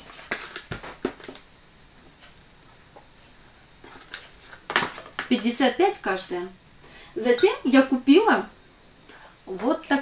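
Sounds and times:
knocks and rustles of handling: 0:00.0 - 0:05.3.

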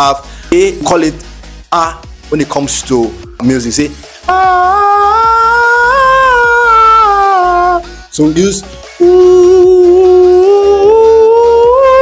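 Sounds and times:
man singing long note: 0:09.0 - 0:12.0.

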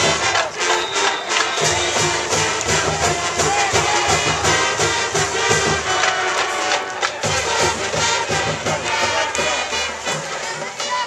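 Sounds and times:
crowd noise: 0:00.0 - 0:11.0
marching band brass and drums: 0:00.0 - 0:11.0.

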